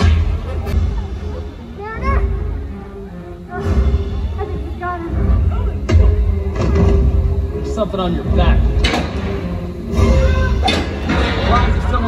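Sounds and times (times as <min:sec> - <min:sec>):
soundtrack music with heavy bass: 0:00.0 - 0:12.0.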